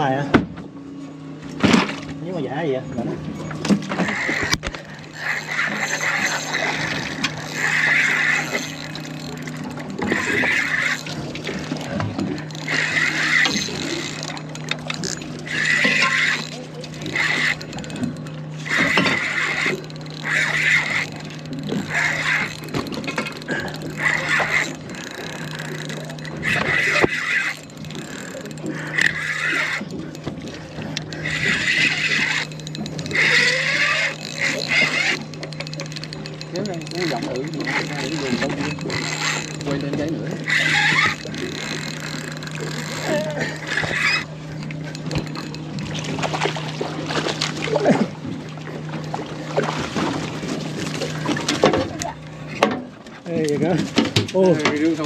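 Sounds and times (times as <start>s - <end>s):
steady low hum: 0.0s - 55.0s
voices talking: 2.1s - 46.7s, 47.4s - 49.5s, 51.0s - 55.0s.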